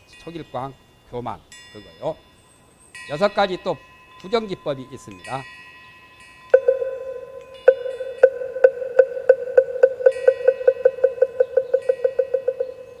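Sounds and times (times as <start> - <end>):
chime tinkling: 0.0 - 13.0.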